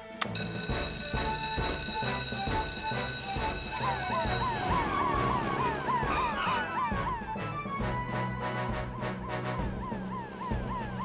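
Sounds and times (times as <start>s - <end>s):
alarm ringing high tone: 0.4s - 6.6s
fire engine siren wailing: 2.0s - 11.0s.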